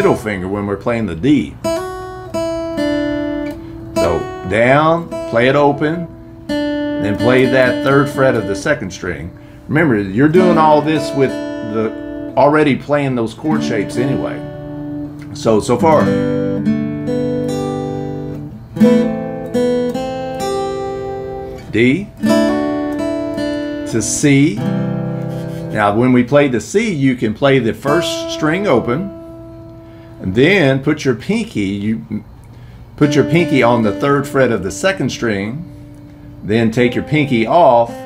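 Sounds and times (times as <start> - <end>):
acoustic guitar picking: 0.0 - 38.0.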